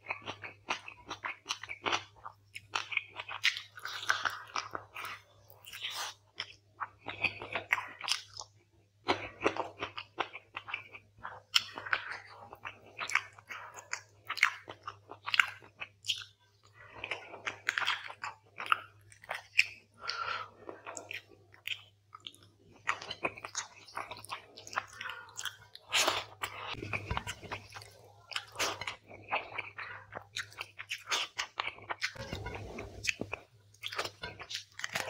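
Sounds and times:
chewing and wet mouth sounds: 0.0 - 35.0
faint low hum: 9.1 - 35.0.

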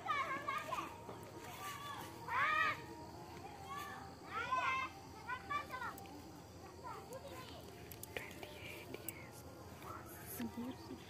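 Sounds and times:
faint whispered voices: 0.0 - 11.0.

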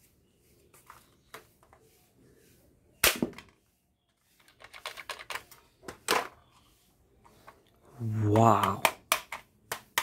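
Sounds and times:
toy dart pistol shot snap: 3.0 - 3.4
small plastic clicks: 4.4 - 6.2.

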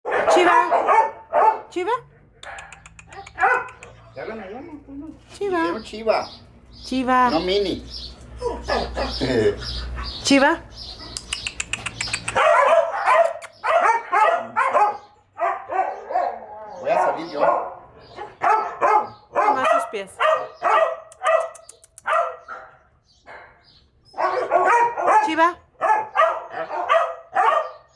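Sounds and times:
dog barking: 0.1 - 1.7, 2.4 - 4.0, 8.4 - 9.2, 12.3 - 27.9.

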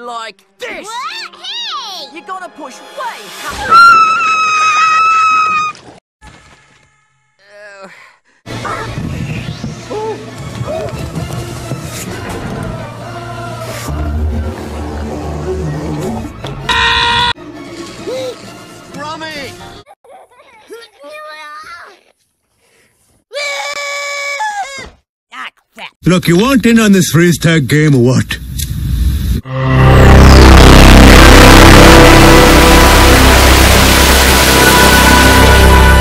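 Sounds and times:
high-pitched cartoon girl scream: 3.6 - 5.7, 23.3 - 25.0
cartoon boy screaming: 23.3 - 25.6.

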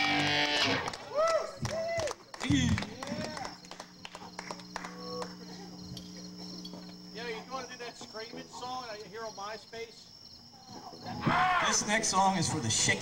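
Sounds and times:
crickets chirping: 0.0 - 13.0
low steady hum: 1.2 - 11.1.

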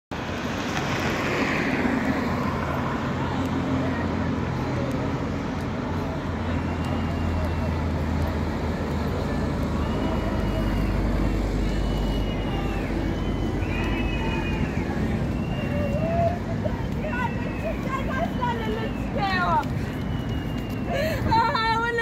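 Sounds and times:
road traffic noise: 0.1 - 22.0
low engine hum: 0.2 - 22.0.

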